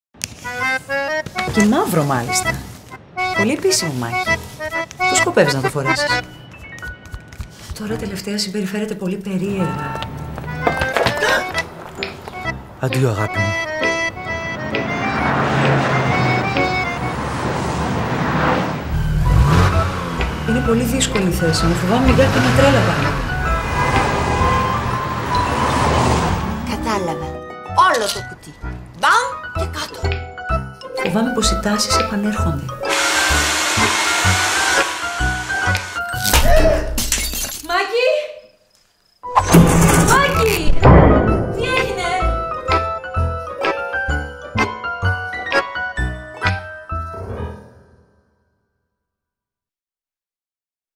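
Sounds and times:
background music with held notes: 0.3s - 8.1s, 9.4s - 17.2s, 18.9s - 25.6s, 26.4s - 36.3s, 41.0s - 47.6s
highway traffic rushing: 0.5s - 6.5s, 9.6s - 27.3s
hair dryer blowing: 32.8s - 36.0s.

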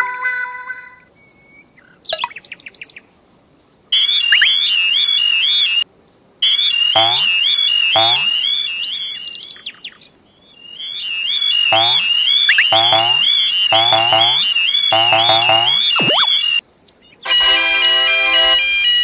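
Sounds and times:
level crossing alarm warbling: 4.3s - 4.7s, 7.0s - 7.4s, 8.0s - 8.4s, 11.7s - 16.6s.

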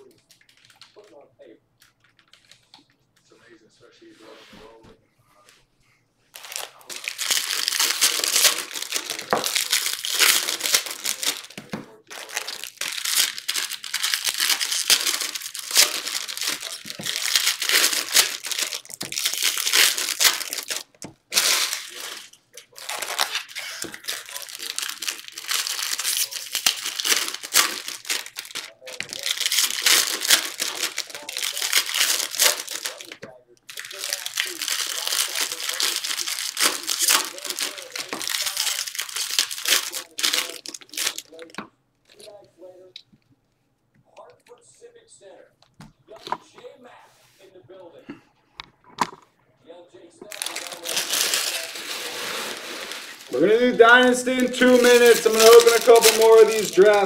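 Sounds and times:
foil wrappers crinkling: 0.0s - 1.2s, 1.8s - 2.9s, 6.3s - 42.4s, 50.2s - 57.0s.

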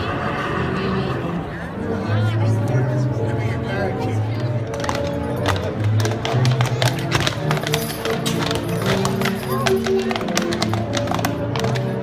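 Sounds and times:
horse hooves on pavement: 3.8s - 12.0s.

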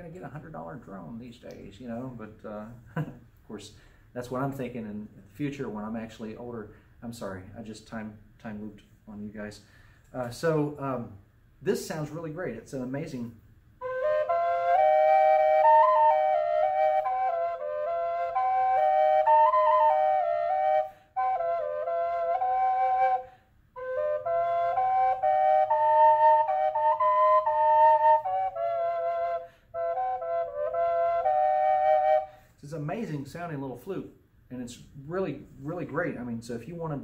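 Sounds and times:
short breaths: 3.7s - 4.2s, 9.6s - 10.2s, 20.8s - 21.2s, 23.2s - 23.7s, 29.4s - 29.8s, 32.2s - 32.6s
drone flute melody: 13.8s - 32.4s.

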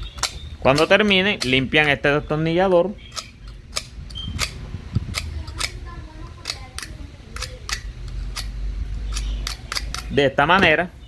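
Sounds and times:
knife blade scraping metal shaft: 6.4s - 10.2s.

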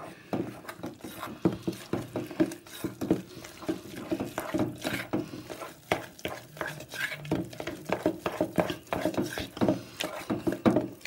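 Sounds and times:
wet stirring of batter: 0.0s - 11.0s.

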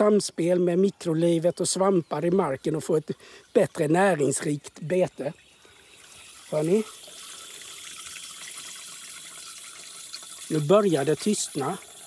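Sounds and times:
water splashing into trough: 6.0s - 12.0s.

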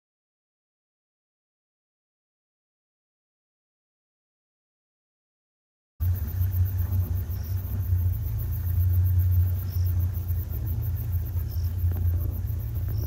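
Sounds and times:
vehicle engine idling: 6.0s - 13.0s.

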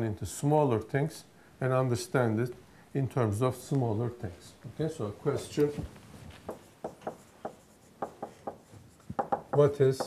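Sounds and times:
marker pen writing on whiteboard: 6.4s - 10.0s.

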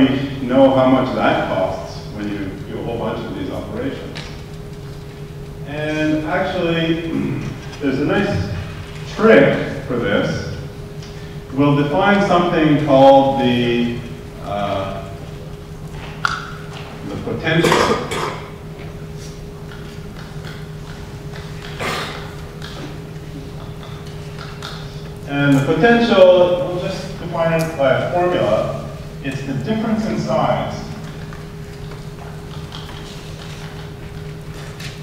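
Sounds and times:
low room hum: 0.0s - 35.0s.

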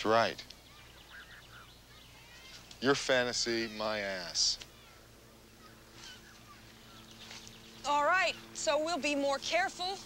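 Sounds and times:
low steady hum and hiss: 0.0s - 10.0s
bird chirps: 0.4s - 4.1s, 4.7s - 8.7s.

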